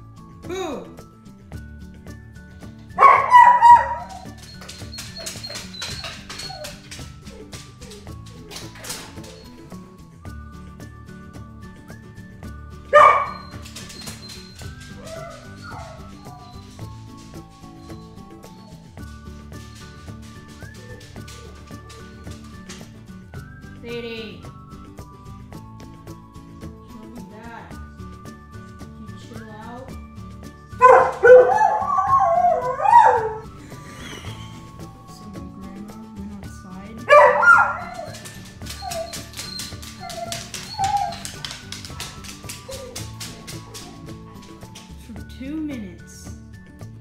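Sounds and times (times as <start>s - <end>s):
background music: 0.0s - 47.0s
dog barking: 3.0s - 4.4s, 12.9s - 14.3s, 15.0s - 16.7s, 30.8s - 33.5s, 37.1s - 44.1s
background music with beat: 24.5s - 47.0s.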